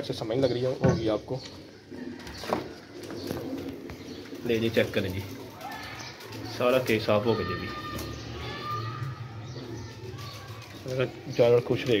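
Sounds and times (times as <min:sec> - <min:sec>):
pigeons cooing softly: 0:00.0 - 0:12.0.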